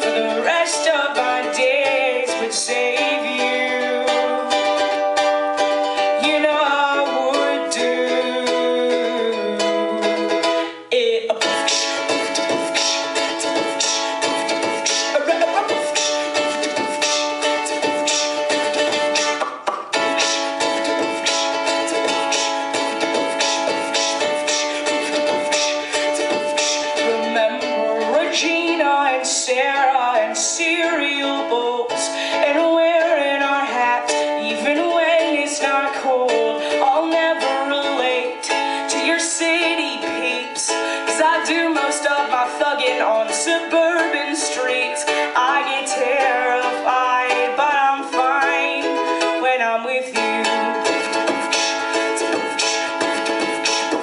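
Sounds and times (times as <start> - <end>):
woman singing: 0.0 - 19.4, 20.2 - 54.0
ukulele strumming: 0.0 - 54.0.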